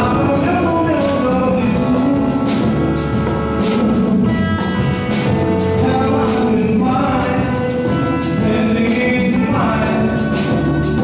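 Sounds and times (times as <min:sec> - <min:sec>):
live pop band playing: 0:00.0 - 0:11.0.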